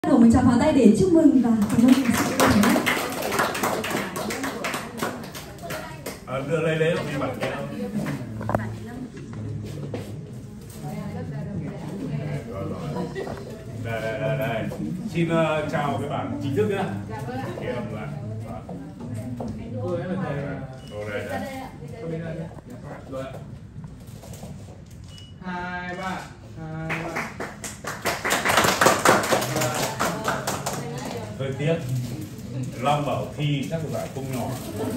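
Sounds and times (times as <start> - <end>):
small group applauding: 1.6 - 8.3, 26.7 - 31.3.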